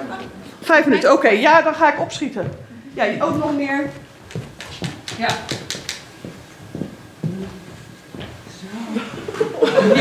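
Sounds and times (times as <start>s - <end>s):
scattered voices in a hall: 0.0s - 6.1s.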